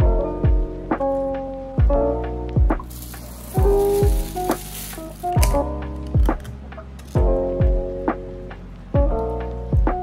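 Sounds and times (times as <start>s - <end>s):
background music with kick drum: 0.0s - 10.0s
plastic bag crinkling: 2.8s - 6.5s.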